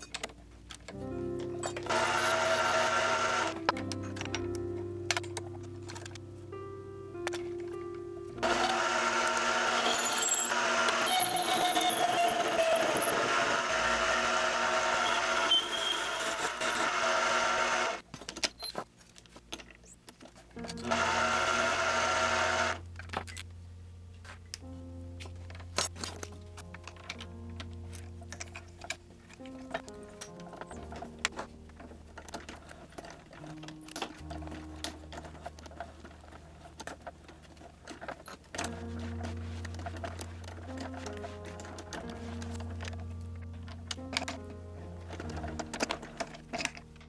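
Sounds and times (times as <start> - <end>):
background music: 0.0 - 18.0, 20.5 - 47.0
mini lathe turning metal: 1.6 - 3.6, 8.4 - 18.0, 20.8 - 22.8.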